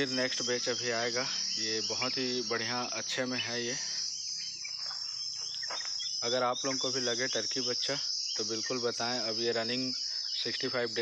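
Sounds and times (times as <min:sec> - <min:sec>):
high-pitched insect chirring: 0:00.0 - 0:11.0.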